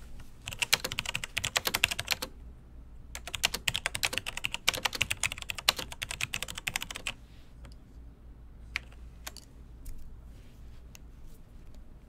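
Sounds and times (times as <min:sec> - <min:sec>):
rapid keyboard typing: 0:00.4 - 0:02.3, 0:03.1 - 0:07.2.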